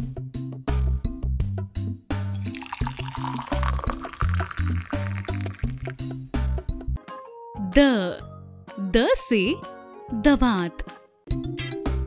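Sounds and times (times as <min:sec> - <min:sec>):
liquid pouring into cup: 0:02.4 - 0:06.3.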